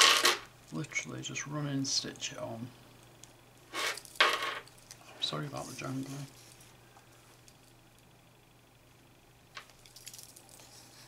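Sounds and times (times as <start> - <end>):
metal chain bracelets jangling: 9.8 - 10.7.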